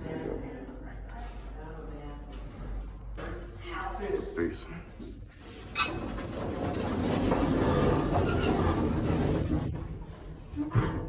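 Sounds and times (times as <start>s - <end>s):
elevator car rumbling and rattling: 5.6s - 11.0s.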